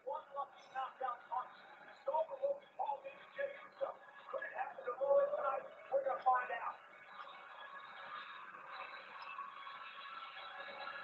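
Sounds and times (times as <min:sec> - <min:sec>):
faint television audio with music: 0:00.0 - 0:11.0.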